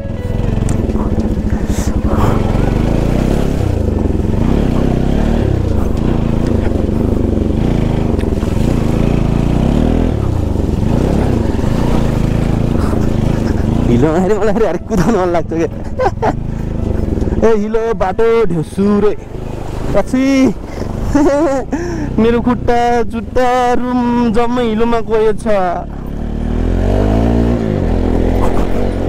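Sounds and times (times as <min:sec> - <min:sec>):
motorcycle engine revving: 0:00.0 - 0:29.0.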